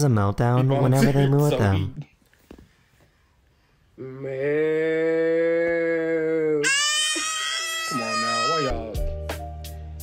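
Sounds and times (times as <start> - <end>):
low voice wailing: 4.0 - 9.0
woman's high-pitched wail: 6.6 - 8.9.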